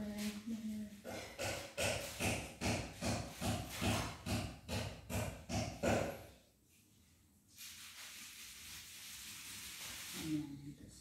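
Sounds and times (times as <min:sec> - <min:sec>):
woman chanting a prayer: 0:00.0 - 0:01.0.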